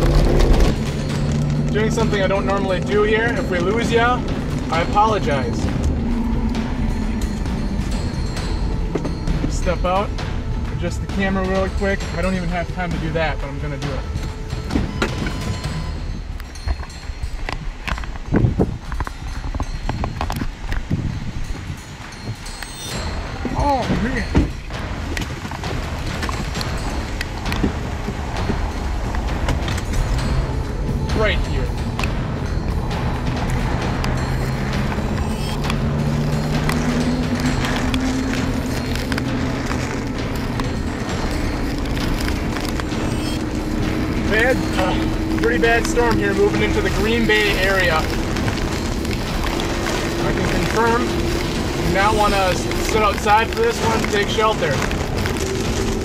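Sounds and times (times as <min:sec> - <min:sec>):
car engine speeding up: 0:00.0 - 0:11.4, 0:24.8 - 0:56.0
rain pelting car: 0:00.0 - 0:56.0
wind gusts buffeting camera: 0:00.0 - 0:56.0.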